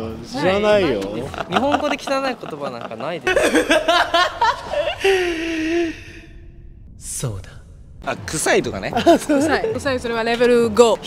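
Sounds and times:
breathy sigh: 4.9s - 6.8s.

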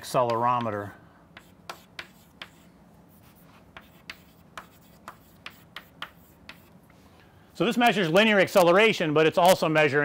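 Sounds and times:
chalk strokes on chalkboard: 1.4s - 7.0s.

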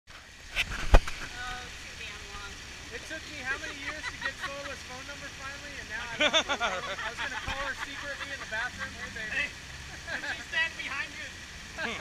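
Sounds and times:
people talking indistinctly: 1.3s - 12.0s.

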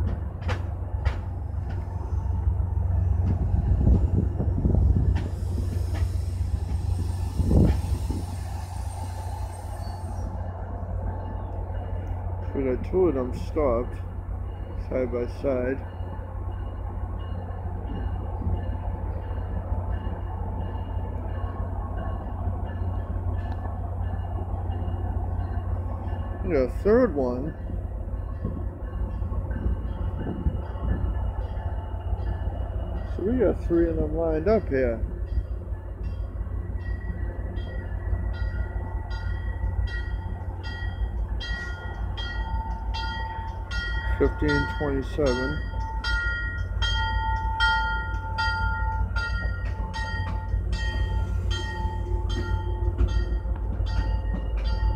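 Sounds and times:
diesel locomotives idling: 0.0s - 54.9s
train rumble: 0.0s - 54.9s.

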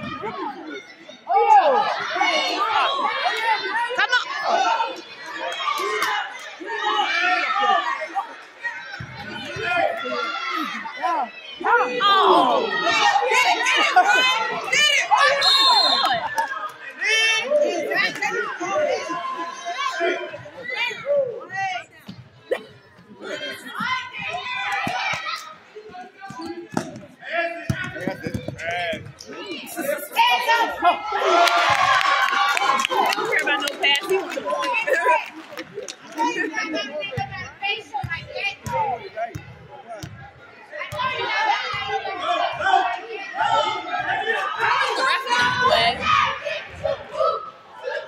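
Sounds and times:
crowd talking and calling: 0.0s - 48.0s
murmur of voices: 0.0s - 48.0s.

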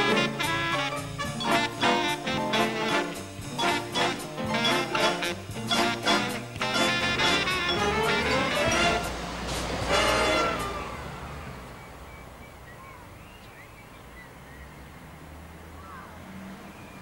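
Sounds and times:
big band brass music: 0.0s - 11.4s
road traffic: 0.0s - 17.0s
bus engine rumble: 3.4s - 13.4s.

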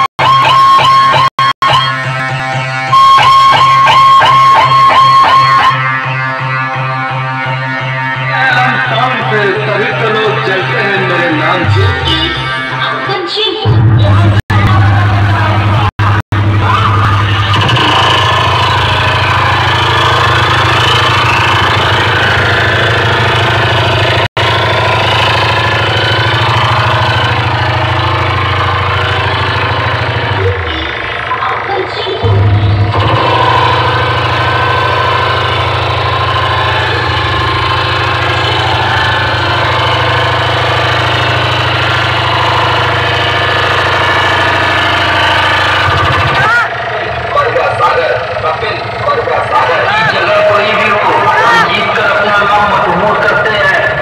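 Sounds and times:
heavy bass drone: 0.0s - 54.0s
loud music from sound systems: 0.0s - 54.0s.

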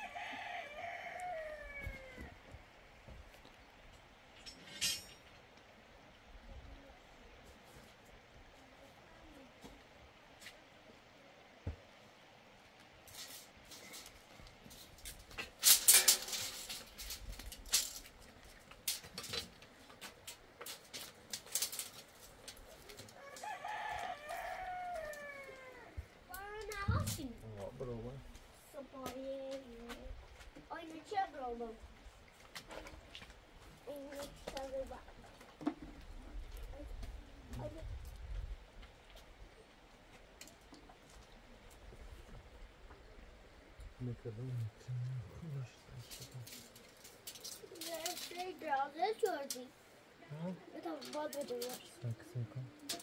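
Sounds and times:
rooster crowing: 0.0s - 2.4s, 23.1s - 26.0s
scraping and knocks: 14.7s - 23.1s.

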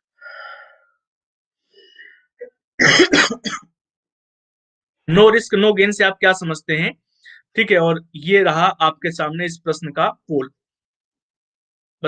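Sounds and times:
man coughing: 2.8s - 3.7s.

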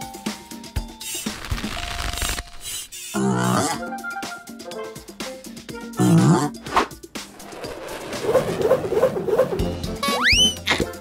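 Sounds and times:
background music: 0.0s - 11.0s
rushing whoosh: 7.3s - 9.6s.

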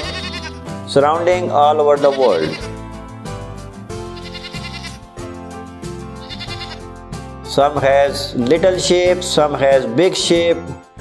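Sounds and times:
goat bleating: 0.0s - 0.8s, 1.7s - 2.8s, 4.0s - 5.2s, 6.2s - 6.9s
background music: 0.0s - 11.0s.

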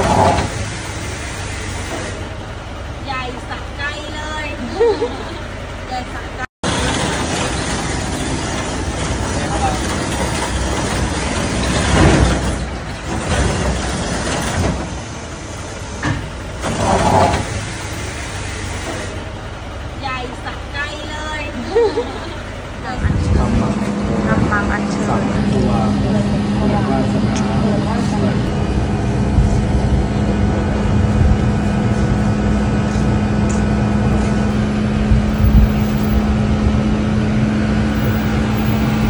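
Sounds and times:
truck mechanical running noise: 0.0s - 39.0s
people talking: 3.0s - 6.5s, 9.2s - 10.2s, 20.0s - 28.5s.

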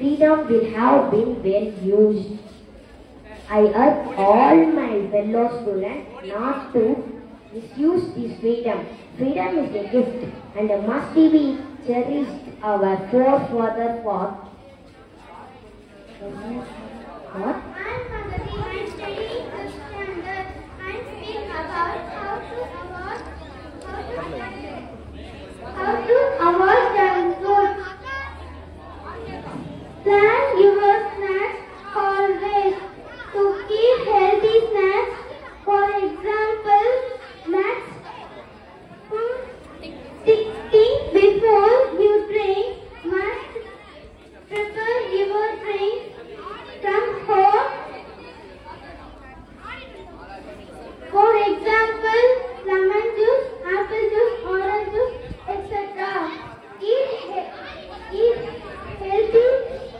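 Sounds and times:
background chatter: 0.0s - 59.9s
girl speaking through microphone: 0.0s - 59.9s.

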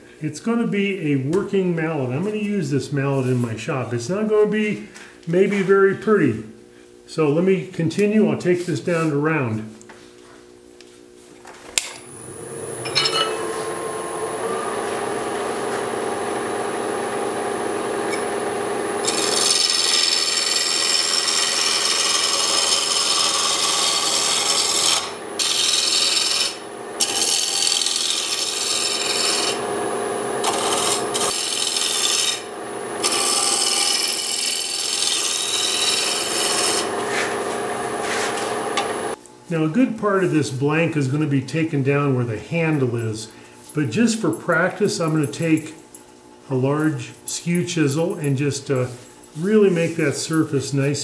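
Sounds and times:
wood lathe motor whining: 12.0s - 39.2s
gouge scraping spinning wood: 12.5s - 39.2s.

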